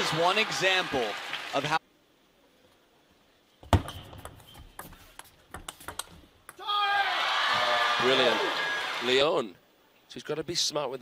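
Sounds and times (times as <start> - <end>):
crowd cheering: 0.0 - 1.8, 6.6 - 9.3
ping pong ball clicking: 4.2 - 6.6
person shouting: 6.6 - 7.7.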